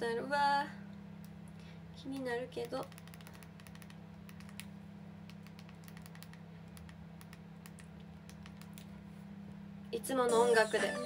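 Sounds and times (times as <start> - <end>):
faint typing: 2.1 - 4.7, 5.3 - 8.9.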